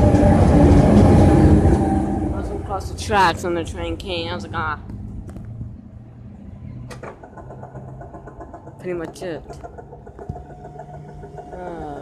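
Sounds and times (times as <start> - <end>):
train engine hum: 0.0 - 12.0.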